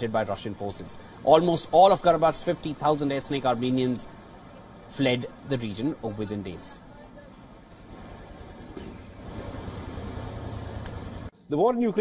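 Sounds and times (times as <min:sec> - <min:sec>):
truck engine rumbling: 0:00.0 - 0:11.3
road noise: 0:00.0 - 0:12.0.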